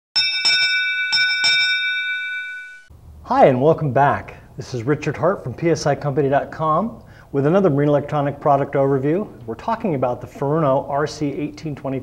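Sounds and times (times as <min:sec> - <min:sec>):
bell struck in quick pairs: 0:00.2 - 0:02.9.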